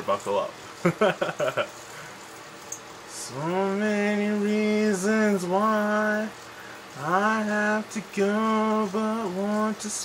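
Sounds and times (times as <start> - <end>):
man singing unaccompanied: 3.1 - 10.0.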